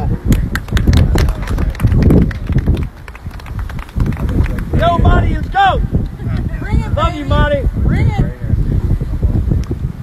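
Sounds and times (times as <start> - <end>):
crowd clapping and cheering: 0.0 - 6.5
wind rumbling on microphone: 0.0 - 10.0.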